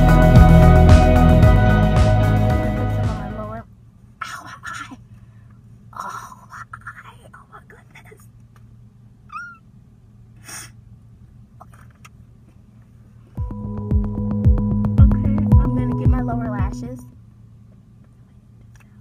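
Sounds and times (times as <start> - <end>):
background music: 0.0 - 3.6, 13.4 - 17.1
low steady hum: 0.0 - 19.0
short squeak: 9.3 - 9.7.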